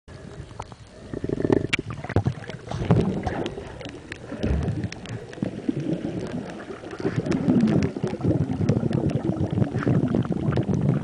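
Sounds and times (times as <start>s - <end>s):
muffled water sloshing underwater: 0.1s - 11.0s.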